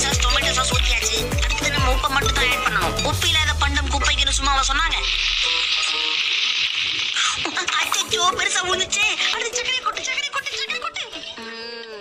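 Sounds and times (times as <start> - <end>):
cartoon sizzling hiss: 4.2 - 9.4.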